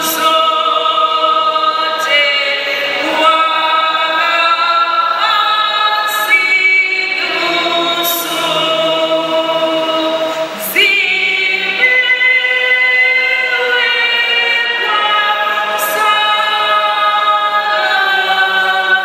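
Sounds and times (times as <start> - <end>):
group singing a hymn: 0.0 - 19.0.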